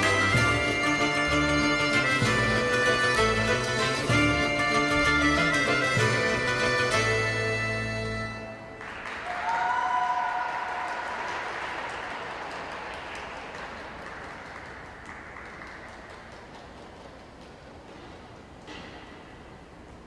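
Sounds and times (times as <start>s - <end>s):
skating music: 0.0s - 9.1s
high-pitched cheer: 8.8s - 12.0s
audience applause: 8.8s - 17.7s.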